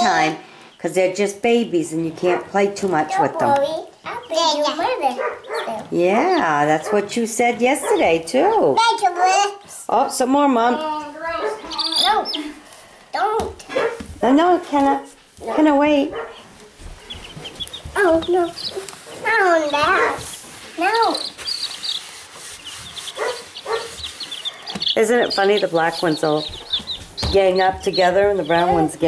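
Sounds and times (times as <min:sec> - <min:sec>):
baby chicks peeping: 0:00.0 - 0:09.3, 0:10.0 - 0:29.0
voices talking: 0:00.0 - 0:29.0.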